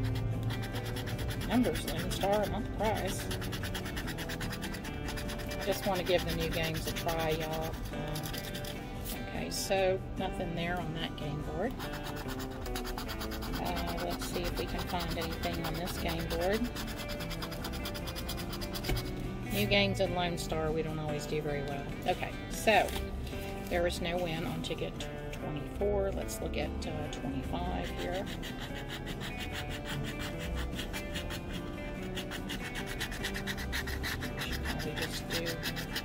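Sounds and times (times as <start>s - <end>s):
scratching lottery ticket: 0.0s - 8.8s, 11.7s - 19.7s, 27.6s - 36.0s.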